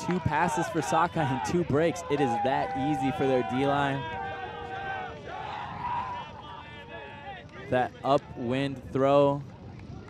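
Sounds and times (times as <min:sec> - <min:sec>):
players cheering and shouting: 0:00.0 - 0:09.2.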